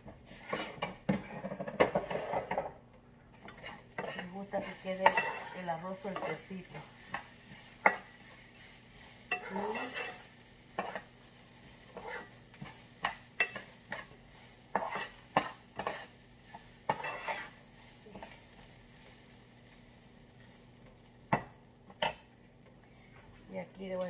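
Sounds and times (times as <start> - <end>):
spoon scraping frying pan: 0.0 - 22.4
faint sizzle: 0.0 - 24.0.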